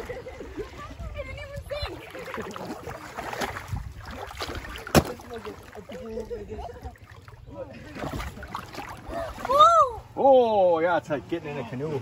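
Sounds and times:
wind rumble on microphone: 0.0 - 5.0.

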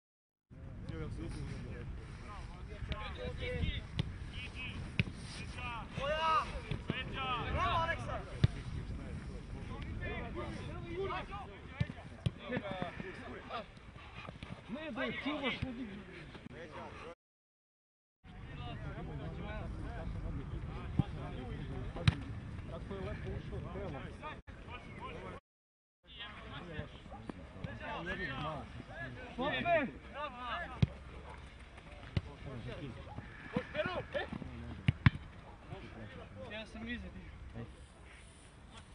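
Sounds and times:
players calling out: 32.0 - 35.1.

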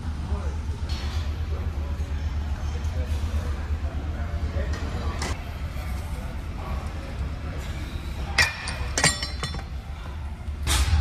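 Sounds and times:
steady low hum: 0.0 - 11.0
metal weights clinking: 8.2 - 9.8.

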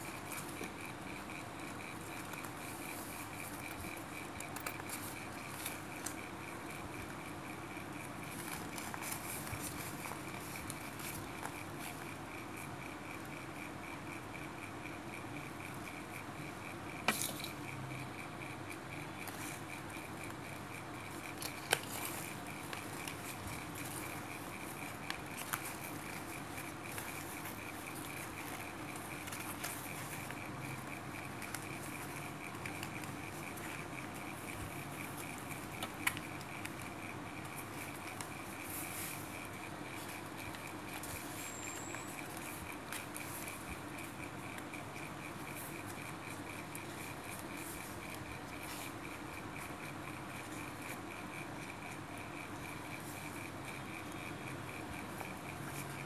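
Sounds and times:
room hum: 0.0 - 56.0.

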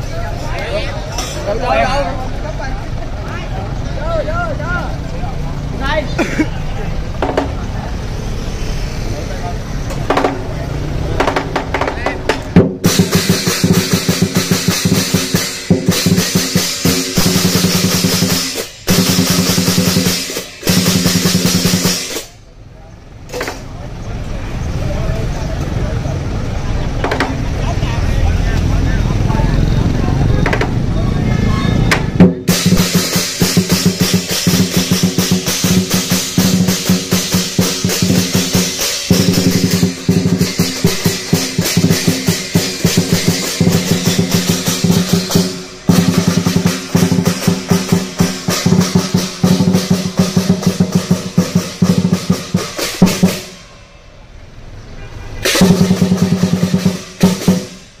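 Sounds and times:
drum and cymbals playing fast beat: 5.8 - 22.5, 31.8 - 53.8, 55.3 - 58.0.

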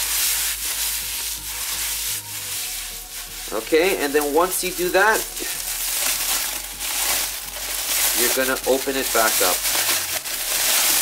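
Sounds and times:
cellophane crinkling: 0.0 - 11.0.

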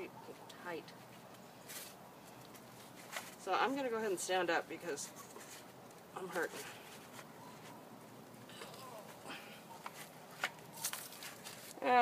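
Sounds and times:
clothing and soil rustling: 0.9 - 12.0.

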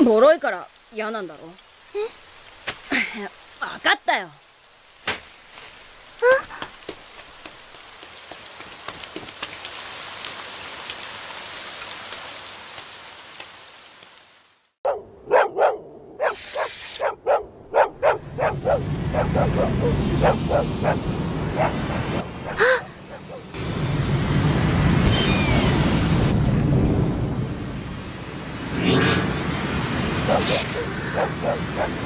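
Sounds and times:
rain falling: 0.0 - 14.8, 18.0 - 32.0
dog barking: 14.8 - 23.6, 30.2 - 32.0.

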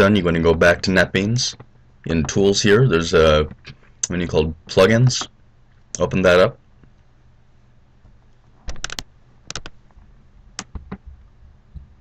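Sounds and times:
computer keys clicking: 8.7 - 9.8, 10.6 - 11.1.

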